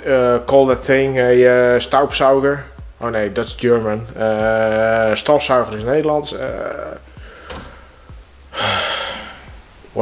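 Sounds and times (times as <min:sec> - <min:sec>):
man sighing heavily: 0:07.0 - 0:09.6.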